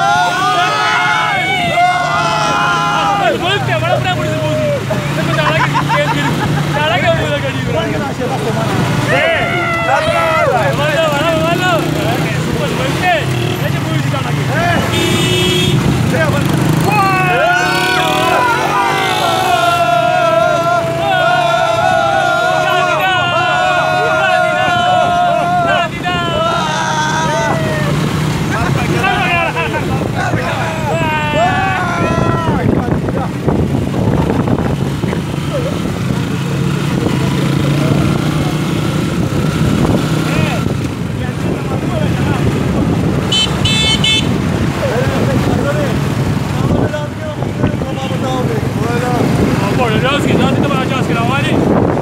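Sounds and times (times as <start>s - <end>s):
men laughing and shouting: 0.0s - 52.0s
men talking loudly: 0.0s - 52.0s
motor rickshaw engine humming: 0.0s - 52.0s
wind: 0.0s - 52.0s.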